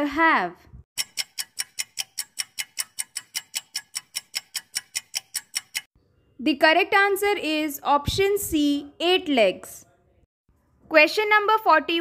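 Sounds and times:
countdown timer ticking: 1.0s - 5.9s.

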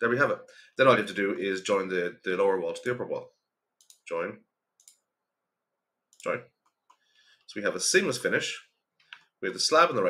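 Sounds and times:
person speaking: 0.0s - 3.3s, 6.2s - 6.6s
computer mouse clicks: 3.8s - 4.1s, 4.8s - 5.1s, 9.0s - 9.3s.

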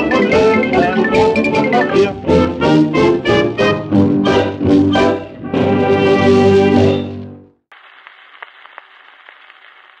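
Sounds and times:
record clicks and crackles: 7.7s - 10.0s
record surface hiss: 7.7s - 10.0s.

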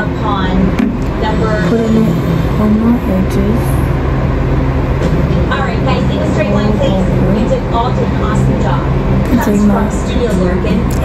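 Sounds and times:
steady low hum: 0.0s - 11.0s
faint voice talking: 1.5s - 3.9s, 9.3s - 9.9s.

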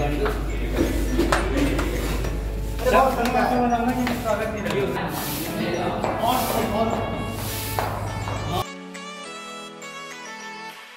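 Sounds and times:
crowd voices in a hall: 0.0s - 8.6s
instrumental music: 0.0s - 10.9s.

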